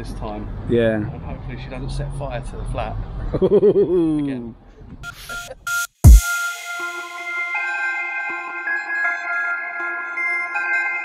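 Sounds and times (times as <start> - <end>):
man laughing: 3.4 - 4.4
short electronic beeps: 5.0 - 7.1.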